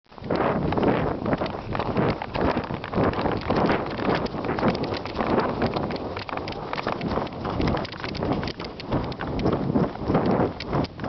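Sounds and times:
wind rumble on microphone: 0:00.1 - 0:11.0.

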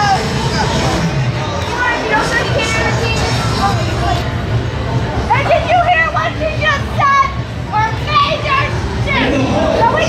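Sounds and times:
young women talking and calling out: 0:05.2 - 0:10.0.

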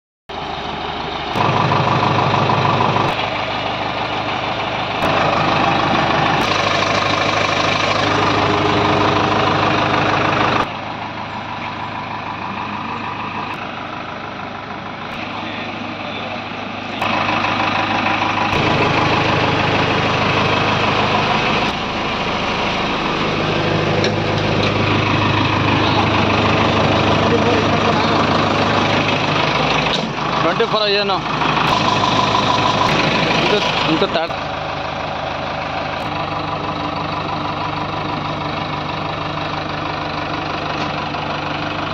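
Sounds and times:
diesel engine idling: 0:00.3 - 0:41.9.

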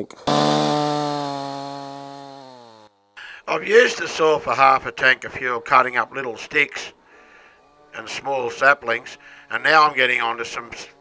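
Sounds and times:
chainsaw engine running: 0:00.2 - 0:04.0, 0:08.2 - 0:11.0.

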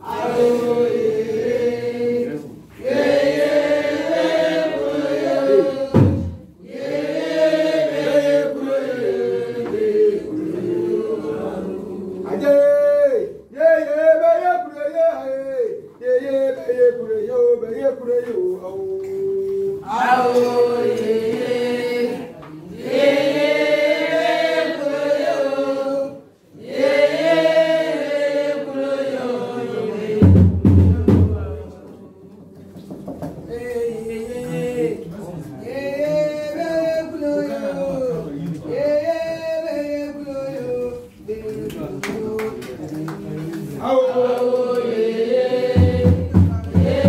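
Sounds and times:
women singing a chant: 0:00.0 - 0:13.1, 0:19.8 - 0:30.5, 0:43.8 - 0:47.0.

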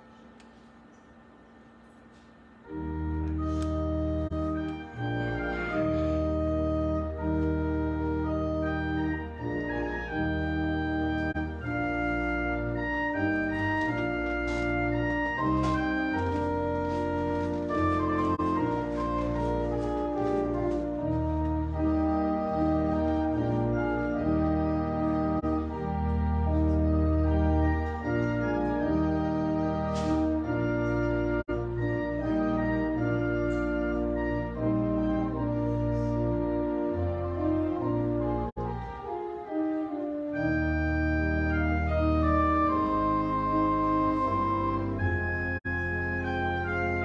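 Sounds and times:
organ playing held chords: 0:00.0 - 0:47.0.

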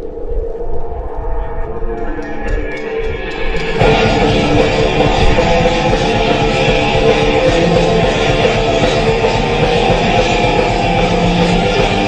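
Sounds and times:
held guitar chord ringing: 0:02.0 - 0:12.0
rock band playing: 0:02.8 - 0:12.0.

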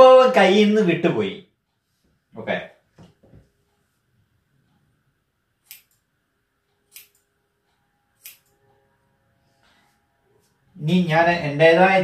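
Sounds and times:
scissors snipping hair: 0:05.6 - 0:06.1, 0:06.9 - 0:07.3, 0:08.2 - 0:08.6.

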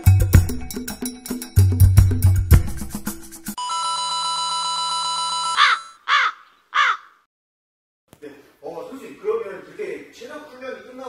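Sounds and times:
crow caws: 0:05.6 - 0:07.3.

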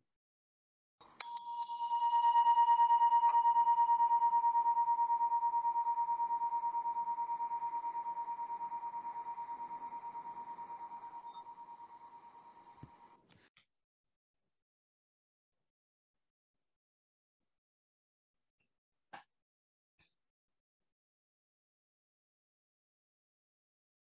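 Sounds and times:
brass meditation chime ringing: 0:01.2 - 0:13.1.

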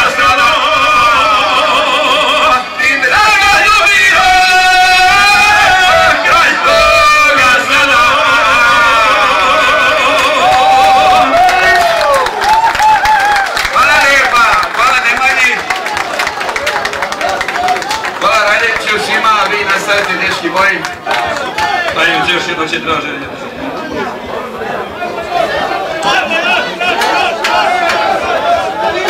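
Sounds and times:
men singing folk song: 0:00.0 - 0:11.8, 0:23.8 - 0:29.0
crowd voices: 0:00.0 - 0:29.0
scattered clapping: 0:00.0 - 0:29.0.

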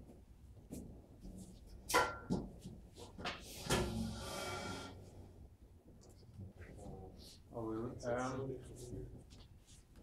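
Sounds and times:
short scrape: 0:03.5 - 0:05.0.

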